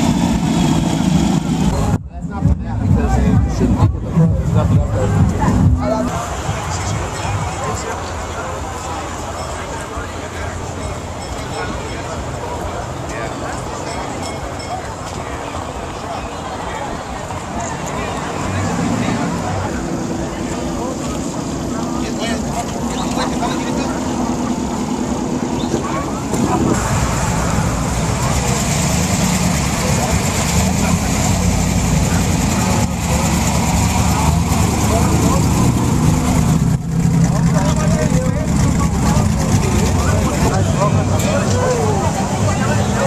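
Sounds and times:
crowd chatter: 0.0 - 43.0
truck engines idling: 0.0 - 43.0.

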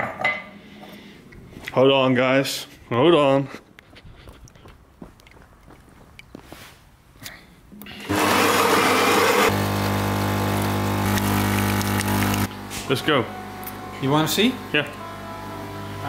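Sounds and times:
espresso machine grinding: 8.0 - 16.0
espresso pump humming: 8.0 - 16.0.

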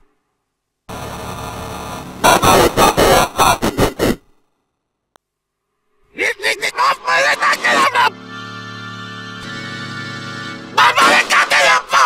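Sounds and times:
distorted cartoon yell: 2.2 - 4.2, 6.2 - 12.0.

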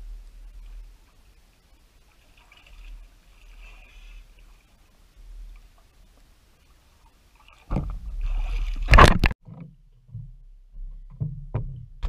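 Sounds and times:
water splashing and sloshing: 0.0 - 12.0.

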